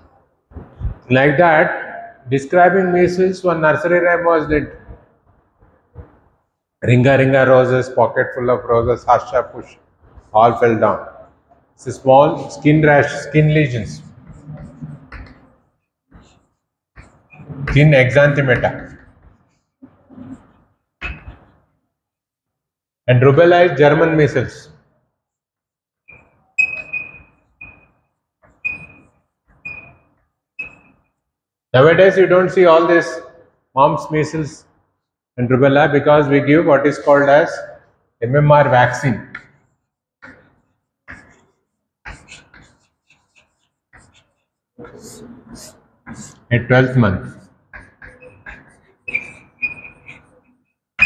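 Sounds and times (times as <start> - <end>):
chalk squeaking on blackboard: 14.3 - 21.6, 26.1 - 31.2, 39.6 - 46.4, 47.7 - 51.0
chalk squealing on blackboard: 40.3 - 46.4, 47.8 - 50.4.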